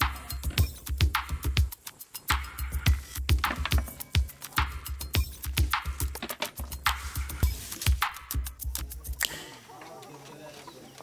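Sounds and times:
background music: 0.0 - 11.0
chickens clucking: 8.8 - 11.0.

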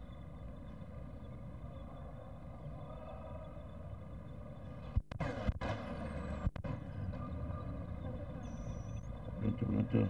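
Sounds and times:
distant voices: 0.0 - 10.0
low street rumble: 0.0 - 10.0.

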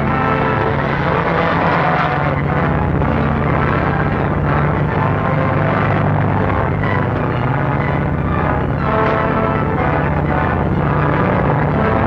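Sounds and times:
propeller airplane flying overhead: 0.0 - 12.0
truck driving: 0.0 - 12.0.

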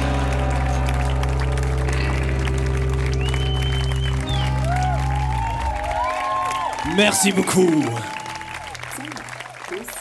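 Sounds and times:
band's final chord on guitar and bass: 0.0 - 6.5
audience clapping and cheering: 0.0 - 10.0.

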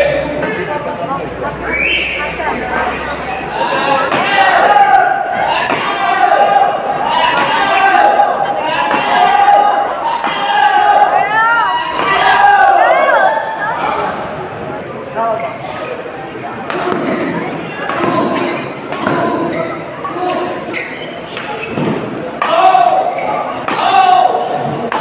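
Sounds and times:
voices shouting: 1.7 - 14.3, 17.9 - 25.0
rackets hitting shuttlecock: 4.0 - 4.7, 5.6 - 6.1, 7.2 - 7.9, 21.3 - 25.0.

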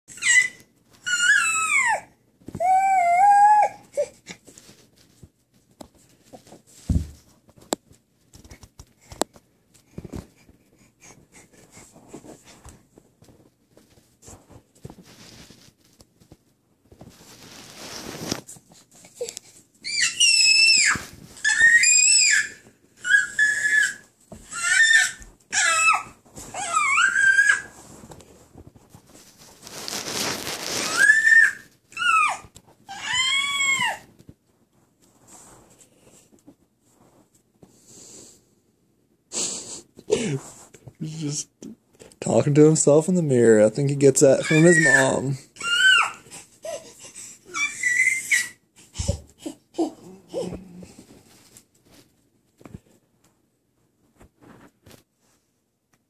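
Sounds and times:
baby squealing: 0.1 - 3.8, 19.8 - 27.7, 30.8 - 34.1, 44.4 - 46.8, 47.5 - 49.1.

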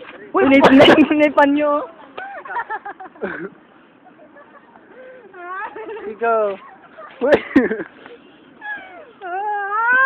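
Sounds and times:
person crying out startled: 8.6 - 10.0.

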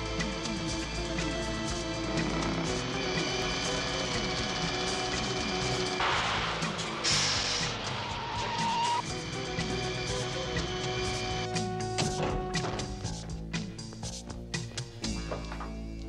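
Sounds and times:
car engine accelerating: 0.0 - 11.9
action soundtrack music: 0.0 - 16.0
burst of rushing noise: 5.9 - 9.0.

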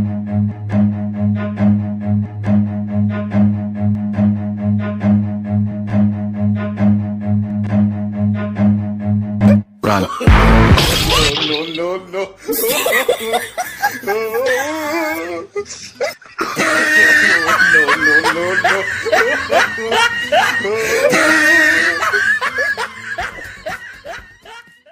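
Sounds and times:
music: 0.0 - 11.3
loud shattering crash: 10.6 - 11.9
person crying out: 12.5 - 15.5, 18.8 - 22.8
person snickering: 12.5 - 24.7.

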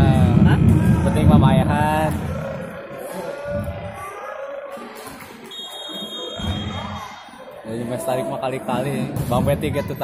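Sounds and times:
referee's whistle: 5.5 - 6.8.

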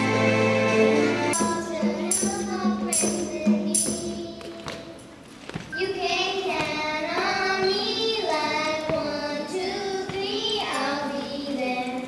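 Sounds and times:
young girls singing: 0.9 - 12.0
soft hand-drum beats: 1.3 - 11.6.

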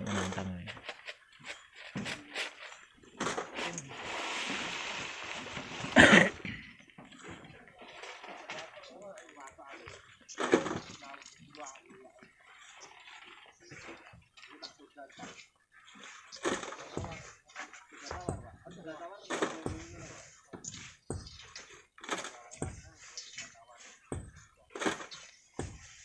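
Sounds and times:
sand and gravel sliding: 0.0 - 6.4, 7.1 - 26.0.

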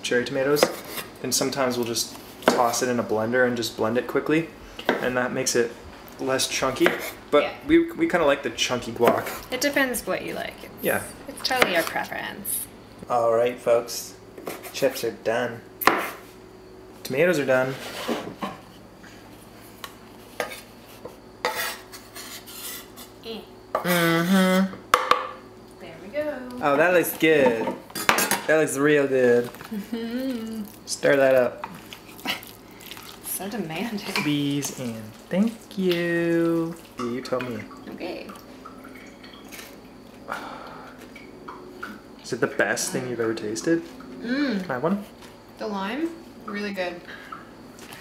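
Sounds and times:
knife scraping on wooden board: 14.4 - 14.9, 17.7 - 18.8, 20.4 - 23.1
chewing: 31.8 - 33.3
chip crunching: 31.8 - 33.4.

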